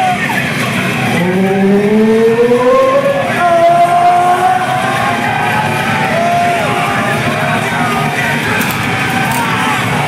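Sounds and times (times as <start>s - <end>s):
club noise: 0.0s - 10.0s
people yelling: 0.0s - 10.0s.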